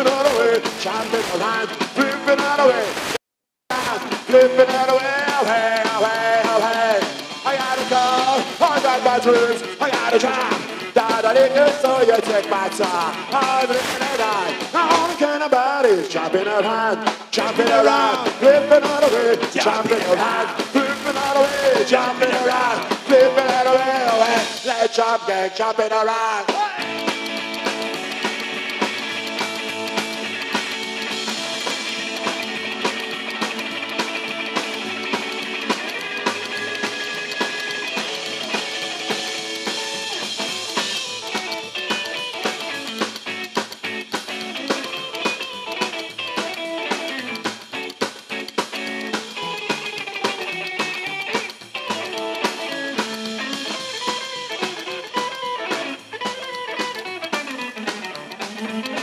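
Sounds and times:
drum kit: 0.0s - 25.2s, 26.4s - 59.0s
hollow-body electric guitar: 0.0s - 25.5s, 26.1s - 59.0s.

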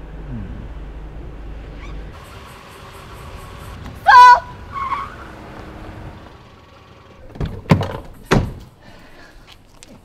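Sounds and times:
car engine idling: 0.0s - 8.8s.

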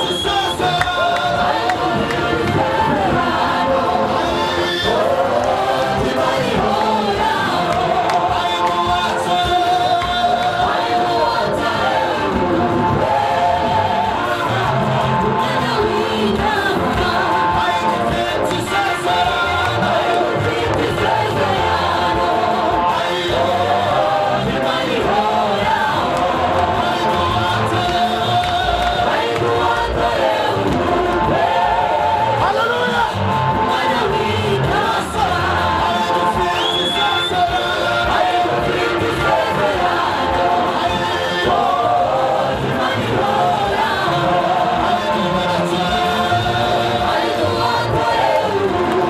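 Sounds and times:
group singing gospel through speakers: 0.0s - 49.0s.

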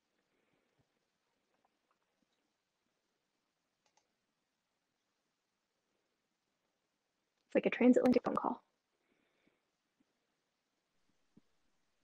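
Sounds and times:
faint clicks: 3.8s - 4.1s.

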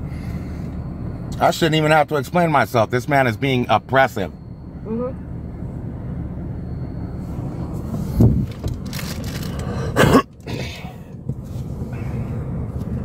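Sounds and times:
low rumble inside van cabin: 0.0s - 13.0s.

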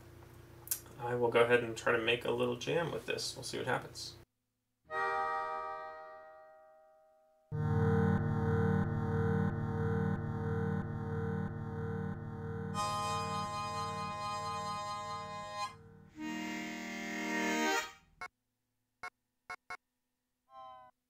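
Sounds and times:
pulsing harmonica chords: 4.9s - 6.5s, 7.5s - 18.3s.

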